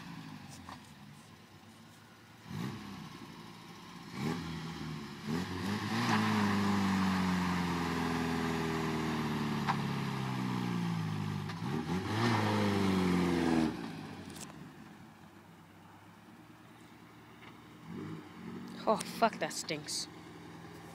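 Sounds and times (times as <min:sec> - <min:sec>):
car engine revving: 0:02.4 - 0:14.5, 0:17.7 - 0:20.9.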